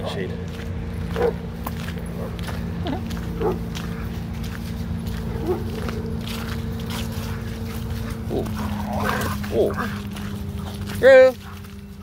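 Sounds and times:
steady low hum: 0.0s - 12.0s
dogs yelping and growling: 1.2s - 1.4s, 2.1s - 11.9s.

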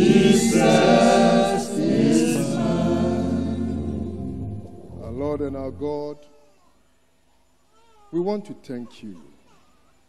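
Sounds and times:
congregation singing gospel: 0.0s - 6.0s.

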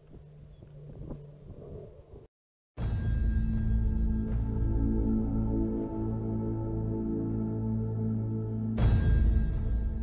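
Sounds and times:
wind rumble on microphone: 0.0s - 2.3s.

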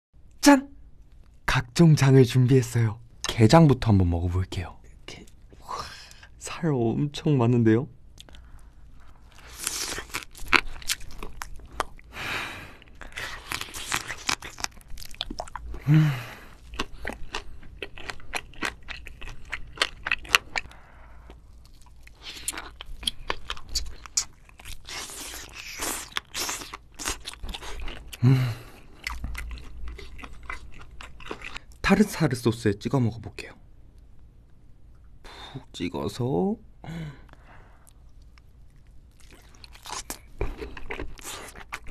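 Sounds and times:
wet chewing and crunching: 9.2s - 12.1s, 12.8s - 15.9s, 16.5s - 31.8s, 37.9s - 41.9s.

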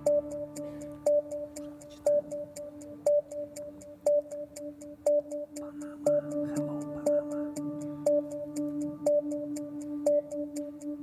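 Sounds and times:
countdown music with held tone: 0.0s - 11.0s
light ticks: 0.0s - 11.0s.

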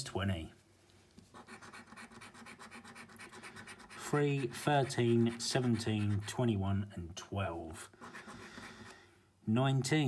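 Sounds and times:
coin scratching scratchcard: 1.4s - 6.4s.

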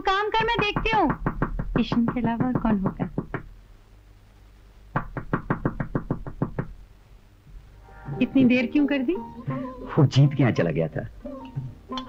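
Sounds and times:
rapid knocking on a door: 0.4s - 3.6s, 4.9s - 6.8s.

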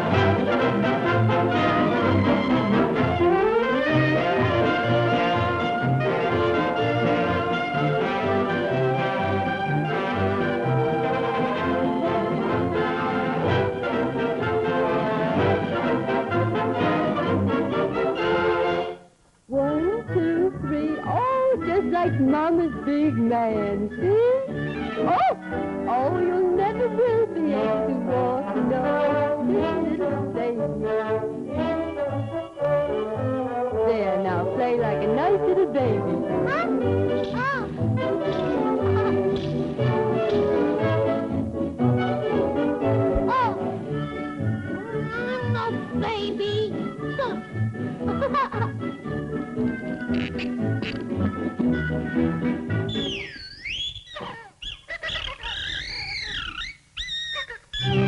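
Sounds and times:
orchestral cartoon music with brass: 0.0s - 19.1s, 19.8s - 53.2s
cartoon animal squeals and chatter: 52.9s - 58.0s.

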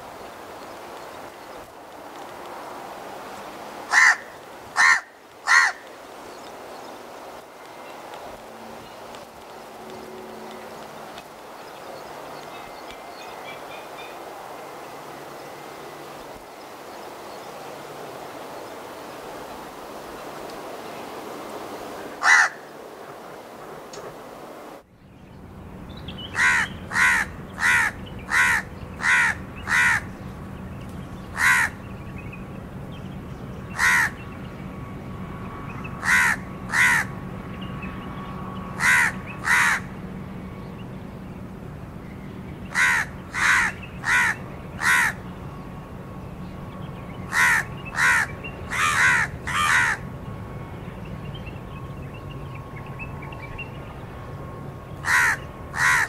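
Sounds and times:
crow cawing: 3.9s - 5.9s, 22.2s - 22.7s, 26.4s - 30.1s, 31.3s - 31.8s, 33.8s - 34.2s, 36.0s - 37.2s, 38.8s - 39.9s, 42.7s - 45.2s, 47.3s - 50.1s, 55.0s - 56.0s.

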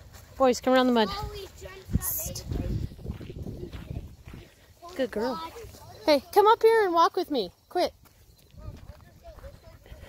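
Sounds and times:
footsteps on muddy dirt road: 0.0s - 10.0s.

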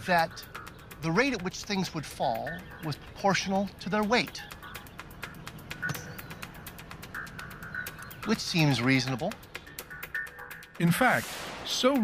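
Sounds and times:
faint music with ticking beat: 0.0s - 12.0s.

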